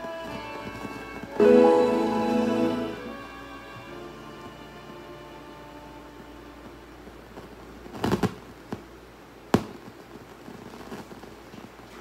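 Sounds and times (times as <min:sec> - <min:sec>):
music: 0:00.0 - 0:06.7.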